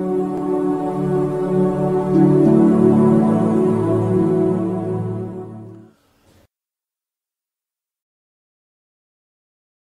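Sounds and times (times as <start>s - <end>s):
faint hiss: 5.7s - 6.5s.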